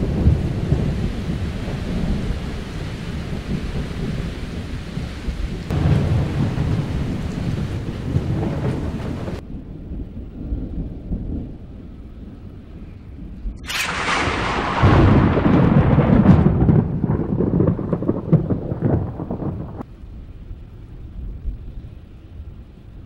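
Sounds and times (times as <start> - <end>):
rain hissing: 0.0 - 9.4, 13.5 - 23.0
rolling thunder: 0.0 - 23.0.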